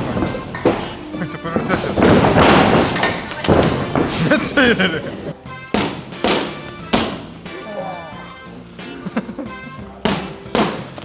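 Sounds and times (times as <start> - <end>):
bare feet thudding on canvas: 0.0 - 4.8
background music: 0.0 - 11.0.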